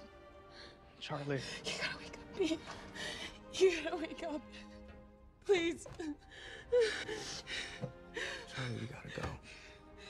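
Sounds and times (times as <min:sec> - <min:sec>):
woman sobbing: 0:01.6 - 0:04.7, 0:06.1 - 0:08.8.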